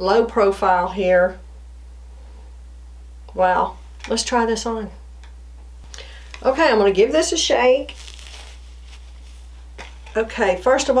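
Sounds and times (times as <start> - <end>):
low electrical hum: 0.0 - 11.0
wig fibers rustling: 5.9 - 10.5.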